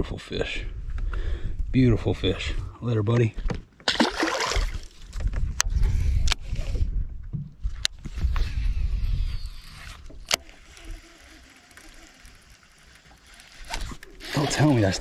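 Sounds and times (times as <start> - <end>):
fishing reel handling noise: 8.4 - 15.0
sharp reel clicks: 9.0 - 15.0.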